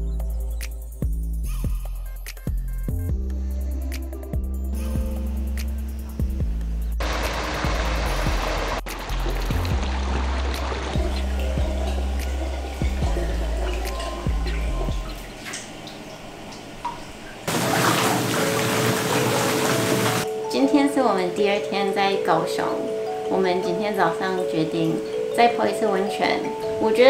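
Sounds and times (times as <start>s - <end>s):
music with deep bass line: 0.0s - 15.6s
running water: 7.0s - 20.3s
water pouring into a bath: 7.0s - 20.3s.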